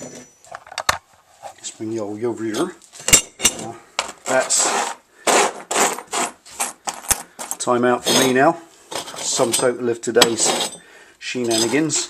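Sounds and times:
metal tabs scraping on wood: 4.3 - 7.0.

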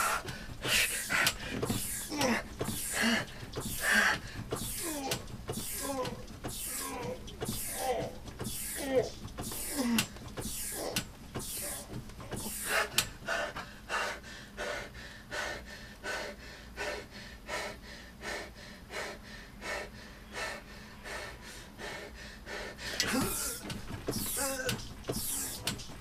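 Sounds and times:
man panting hard: 0.0 - 26.0.

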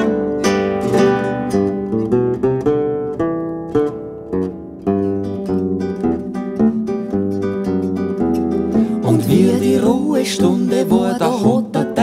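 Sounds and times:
acoustic guitar plucking and strumming: 0.0 - 12.0.

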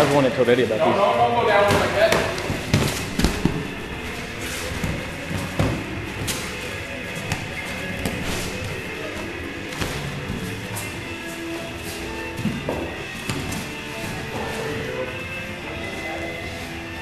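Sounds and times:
background music: 0.0 - 17.0
bodies thudding on foam mats: 1.6 - 14.8.

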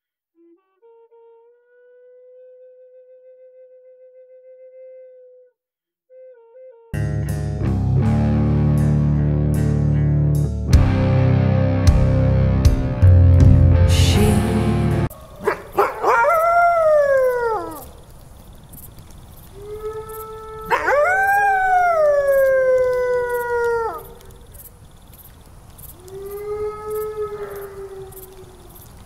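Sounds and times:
canine howling: 15.1 - 18.1, 19.5 - 24.6, 25.9 - 29.0.

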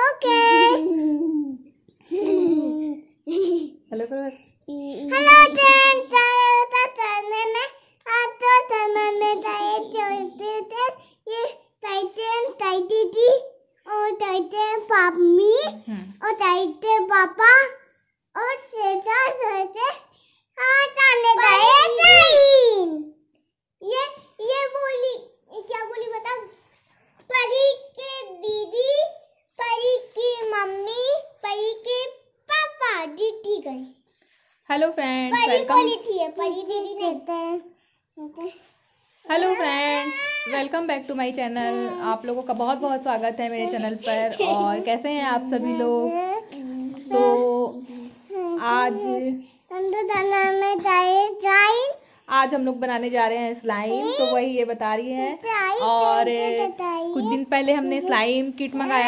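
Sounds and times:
young girl singing: 39.9 - 40.6.

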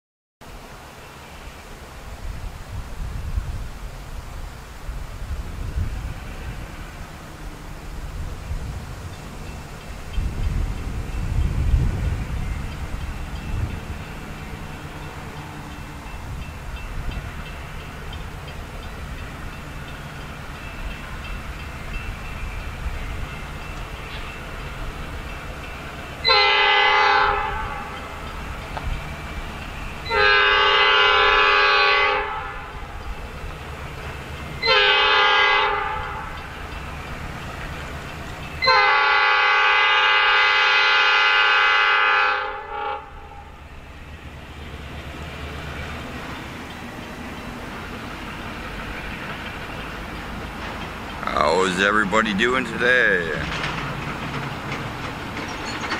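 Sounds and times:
diesel locomotive rumble: 0.4 - 55.9
locomotive air horn blasts: 26.2 - 28.0, 30.0 - 32.8, 34.6 - 36.4, 38.6 - 43.5.

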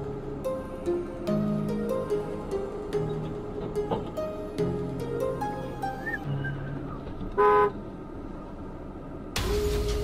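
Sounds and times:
car horn honk: 7.3 - 7.8.

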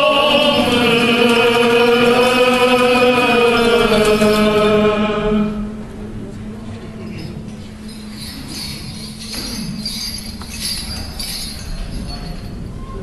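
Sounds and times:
voices chanting held notes: 0.0 - 6.2
low drone: 0.0 - 7.3.

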